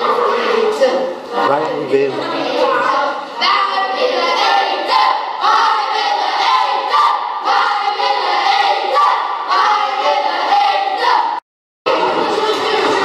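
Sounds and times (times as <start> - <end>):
children singing in unison: 2.2 - 13.0.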